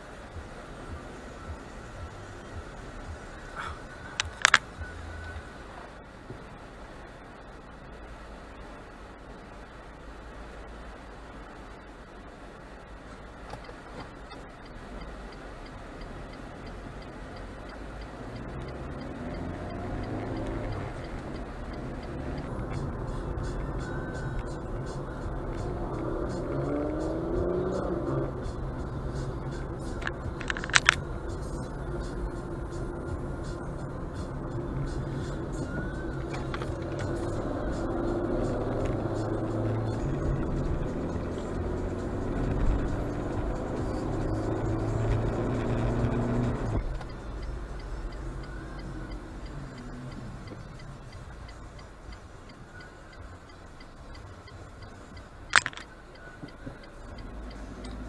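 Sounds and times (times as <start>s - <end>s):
car engine and road rumble: 0.0s - 58.0s
music playing in car: 0.0s - 58.0s
sharp clicks: 4.2s - 5.4s, 13.5s - 33.6s, 34.2s - 58.0s.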